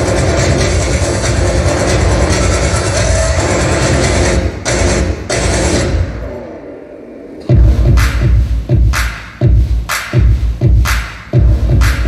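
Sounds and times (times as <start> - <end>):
electronic dance music over pa: 0.0 - 12.0.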